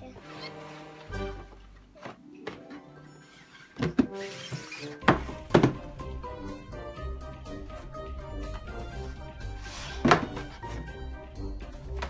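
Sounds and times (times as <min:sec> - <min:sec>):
background music: 0:00.0 - 0:12.0
boxes thumping on a table: 0:03.8 - 0:04.2, 0:05.0 - 0:05.9, 0:10.0 - 0:10.9.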